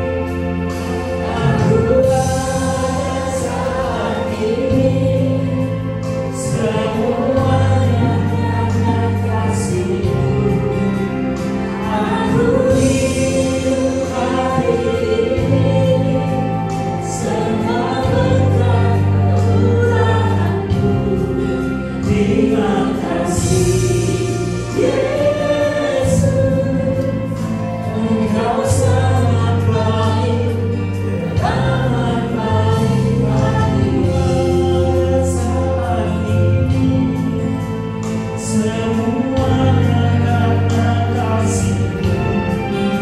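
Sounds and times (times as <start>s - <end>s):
congregation singing: 0.0s - 43.0s
instrumental accompaniment with bass: 0.0s - 43.0s.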